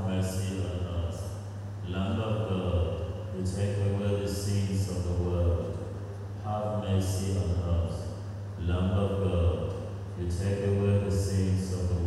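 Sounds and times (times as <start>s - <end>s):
man reciting a prayer: 0.0s - 12.0s.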